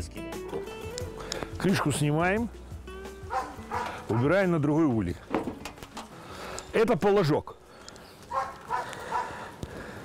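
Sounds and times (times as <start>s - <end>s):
animal calling: 3.3s - 4.4s.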